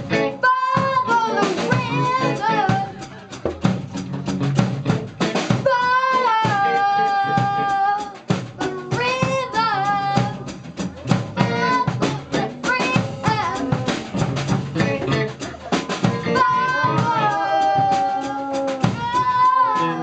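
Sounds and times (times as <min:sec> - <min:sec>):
child singing: 0:00.0 - 0:03.6, 0:05.2 - 0:20.0
live rock band playing: 0:00.0 - 0:20.0.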